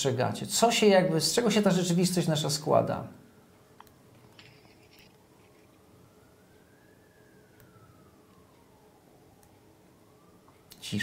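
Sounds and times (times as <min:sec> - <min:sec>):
faint siren wail: 0:00.0 - 0:11.0
faint steady hum: 0:00.0 - 0:11.0.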